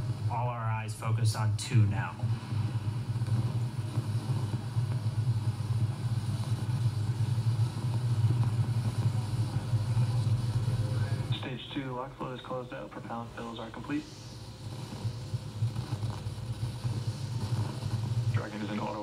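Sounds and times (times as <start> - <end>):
low rocket launch rumble: 0.0 - 19.0.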